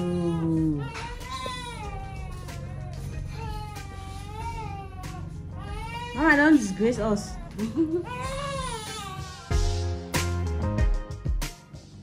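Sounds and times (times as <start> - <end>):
baby crying: 0.0 - 9.6
quiet background music: 0.0 - 12.0.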